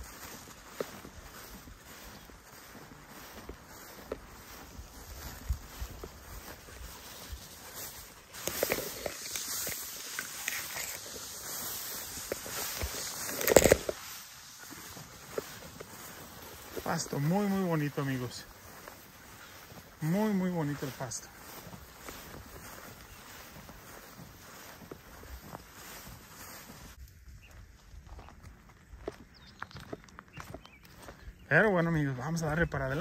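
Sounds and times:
footsteps through tall grass: 0.0 - 33.0
grass stalks brushing and rustling: 0.0 - 33.0.

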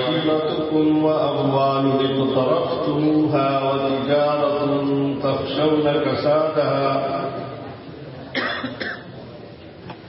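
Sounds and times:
person coughing: 8.3 - 9.1.

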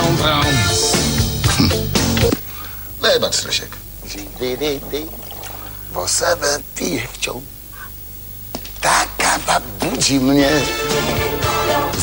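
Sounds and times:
person speaking: 3.0 - 7.9
coffee pouring from a jug: 4.0 - 6.6.

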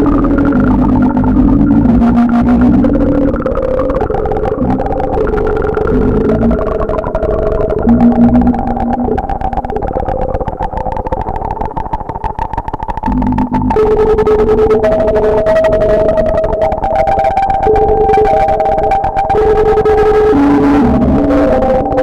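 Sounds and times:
heavy bass notes: 0.0 - 10.6, 13.0 - 22.0
fast pulsing electronic texture: 0.0 - 20.1
sustained synthesizer notes: 0.0 - 22.0.

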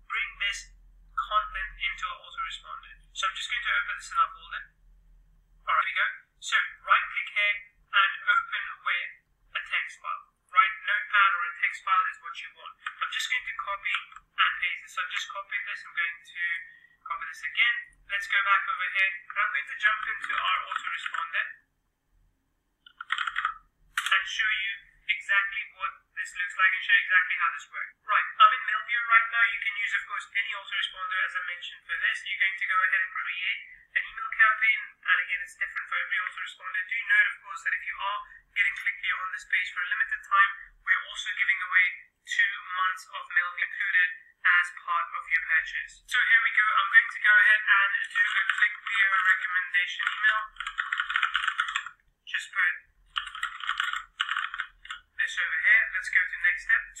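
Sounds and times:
person talking over telephone: 0.0 - 4.7, 5.6 - 21.7, 22.9 - 57.0.

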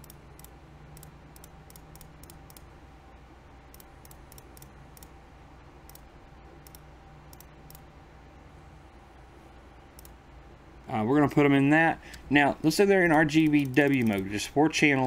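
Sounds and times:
computer mouse clicking: 0.0 - 2.7, 3.7 - 5.2, 5.8 - 7.9, 9.9 - 10.2, 13.1 - 14.3
faint background hum: 0.0 - 15.0.

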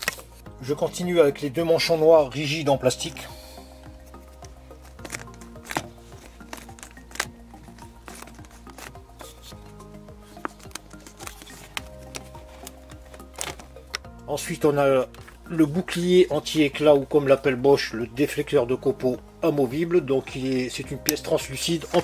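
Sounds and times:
quiet background music: 0.0 - 22.0
plastic clicks and rubbing: 4.8 - 9.6, 10.2 - 14.1.

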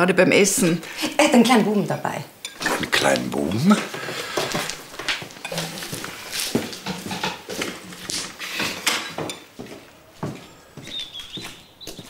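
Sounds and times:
footsteps on hard floor: 3.9 - 12.0
faint high chirping: 10.4 - 12.0.

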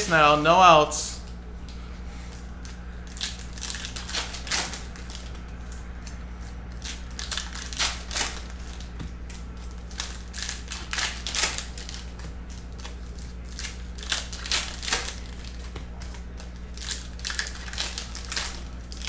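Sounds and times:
foil wrappers crinkling: 0.0 - 19.0
low steady hum: 0.0 - 19.0.

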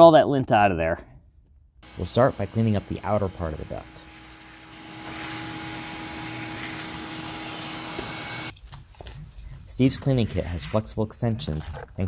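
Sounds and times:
vacuum cleaner running: 1.8 - 8.5.

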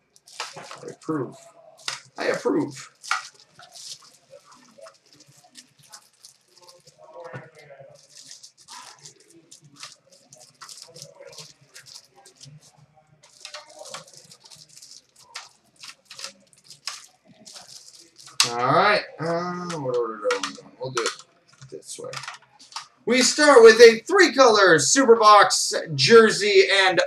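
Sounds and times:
plastic wrapper crinkling: 0.0 - 19.0, 19.6 - 23.4.

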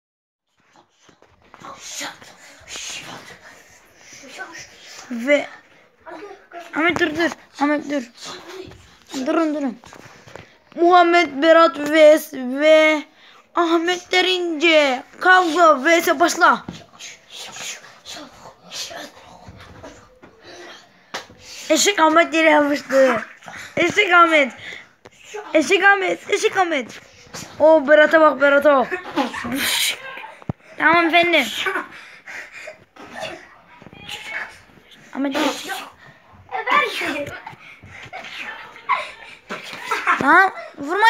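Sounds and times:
children's excited vocal noises: 0.7 - 41.0.

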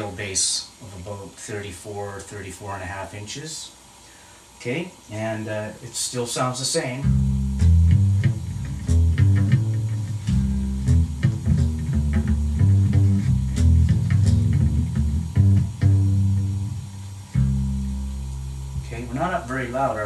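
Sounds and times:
electric bass plucked notes: 7.0 - 20.0.

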